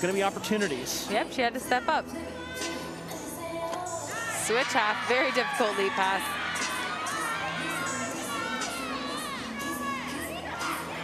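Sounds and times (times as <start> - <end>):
people shouting and cheering: 3.9 - 11.0.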